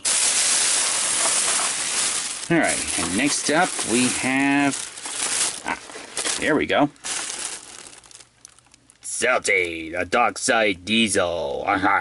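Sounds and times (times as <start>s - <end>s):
plastic bag rustling: 0.0s - 9.1s.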